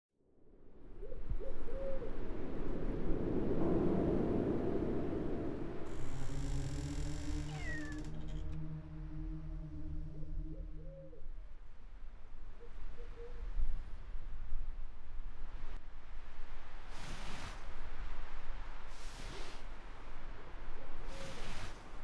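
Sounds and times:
rushing wind-like noise: 0.7 - 7.0
low sustained drone: 3.6 - 12.7
falling squeal: 5.9 - 11.1
low hooting calls: 5.9 - 13.4.

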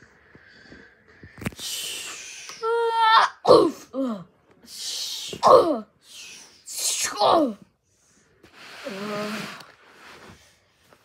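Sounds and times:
child sighing and groaning: 1.8 - 7.7, 8.7 - 9.7.

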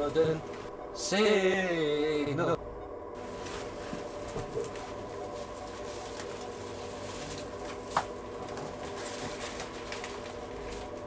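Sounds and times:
hum of held tones: 0.0 - 11.0
faint rustles: 3.2 - 11.0.

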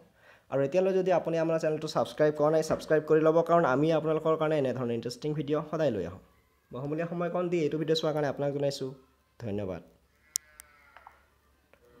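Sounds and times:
faint drawn-out animal call: 10.1 - 12.0.

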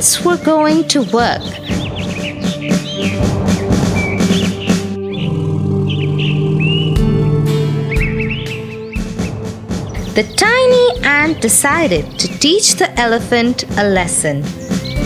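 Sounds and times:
cartoon background music: 0.0 - 15.0
bird-like chirps: 0.6 - 12.8, 14.4 - 15.0
low thuds: 1.2 - 12.3.

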